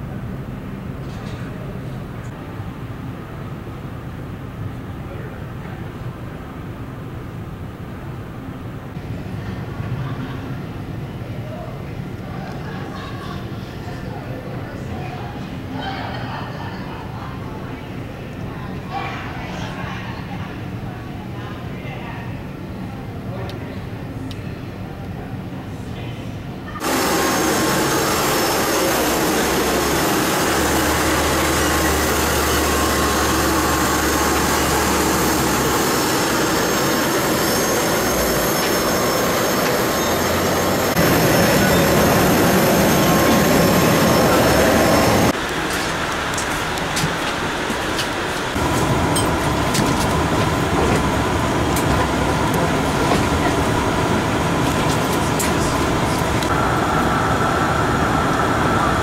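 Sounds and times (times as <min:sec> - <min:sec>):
thin steady whine: 0:26.7 - 0:59.0
roar of aircraft and ramp equipment: 0:26.8 - 0:59.0.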